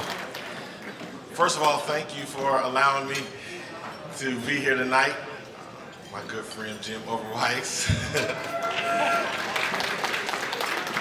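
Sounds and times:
audience clapping: 0.0 - 0.7, 8.6 - 11.0
crowd cheering: 8.0 - 11.0.

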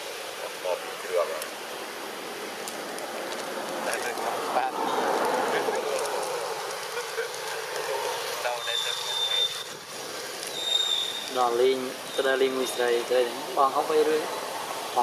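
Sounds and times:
rough noisy hiss: 0.0 - 15.0.

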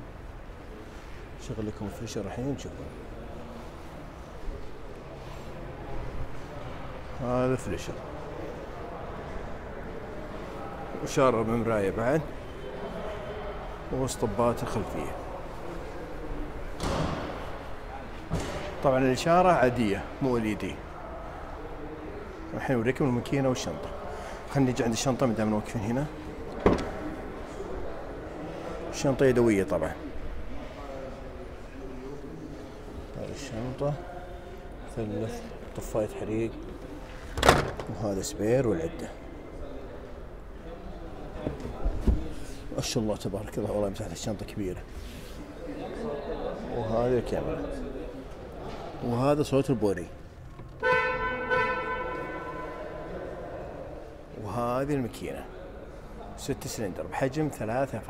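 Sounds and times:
car trunk latch clunk: 26.6 - 27.0
car horn honk: 50.8 - 53.0.

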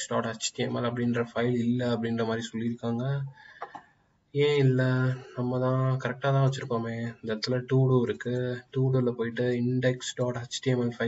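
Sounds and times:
man's voice holding long tones: 0.0 - 3.4, 4.3 - 11.0.

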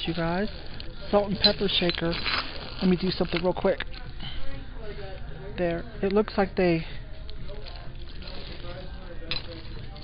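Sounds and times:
ceramic shakers clinking in bag: 0.0 - 4.0, 7.5 - 10.0.

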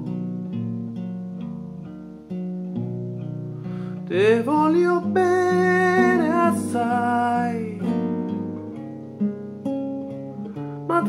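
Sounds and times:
acoustic guitar picked chords: 0.0 - 11.0.

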